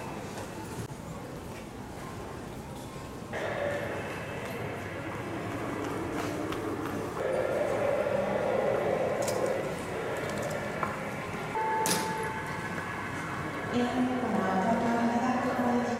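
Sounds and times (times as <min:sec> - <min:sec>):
busy hall background noise: 0:00.0 - 0:15.9
indistinct voices: 0:03.3 - 0:15.9.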